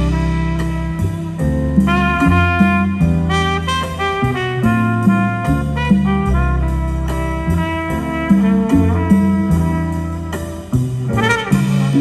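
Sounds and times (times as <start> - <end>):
bass notes and chords: 0.0 - 12.0
trumpet melody: 0.0 - 12.0.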